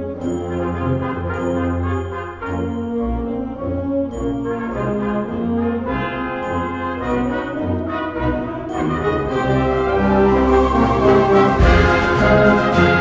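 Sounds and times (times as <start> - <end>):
concert band playing a march: 0.0 - 13.0.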